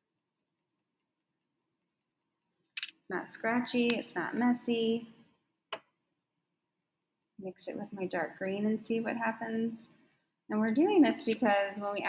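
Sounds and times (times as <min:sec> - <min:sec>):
pencil scratching on paper: 0:00.0 - 0:03.2.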